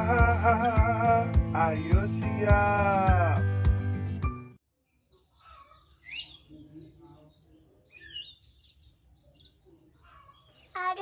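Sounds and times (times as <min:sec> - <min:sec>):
small birds chirping: 0:04.7 - 0:11.0.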